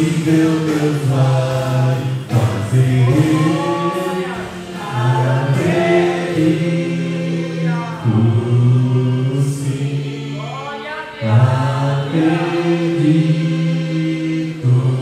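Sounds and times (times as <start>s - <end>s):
man singing into microphone: 0.0s - 15.0s.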